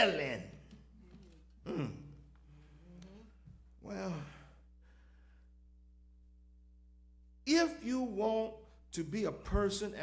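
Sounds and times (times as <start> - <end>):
low electrical hum: 0.0 - 10.0
faint breath: 4.3 - 5.6.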